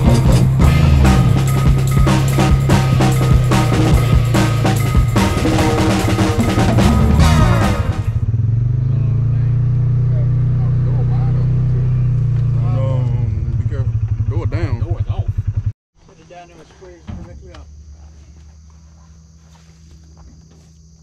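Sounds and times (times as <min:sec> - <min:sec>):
vehicle engine humming: 0:00.0 - 0:21.0.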